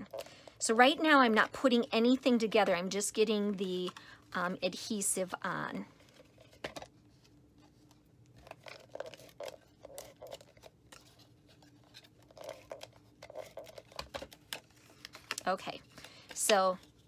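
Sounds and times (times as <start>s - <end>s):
paper rustling: 6.0s - 17.0s.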